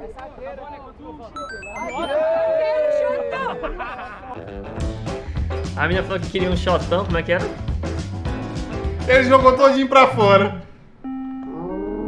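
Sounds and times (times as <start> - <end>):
short electronic beeps: 1.4 - 2.2
background music: 1.4 - 2.4, 4.4 - 10.5.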